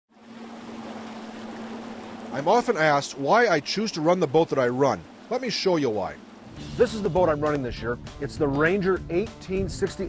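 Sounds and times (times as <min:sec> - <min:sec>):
outboard motor running: 0:00.1 - 0:10.0
water and wind noise: 0:00.1 - 0:10.0.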